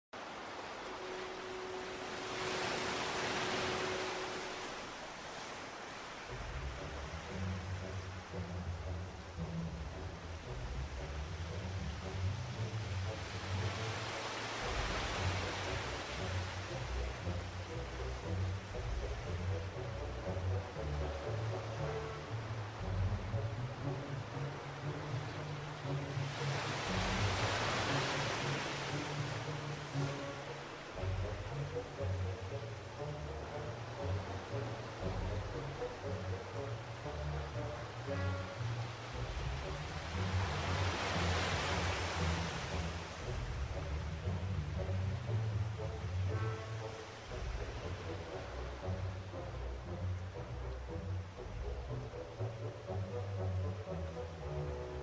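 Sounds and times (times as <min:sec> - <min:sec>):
background music with low bass: 0:00.2 - 0:55.0
sea waves washing onto beach: 0:00.2 - 0:55.0.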